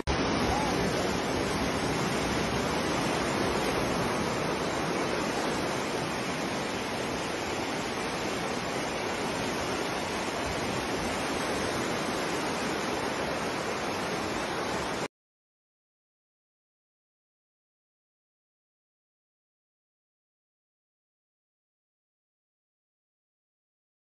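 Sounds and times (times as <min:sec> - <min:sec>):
floodwater rushing: 0:00.0 - 0:15.1.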